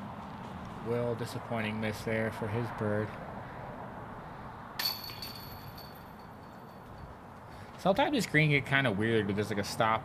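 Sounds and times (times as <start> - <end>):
disc striking metal chains: 4.8 - 7.2.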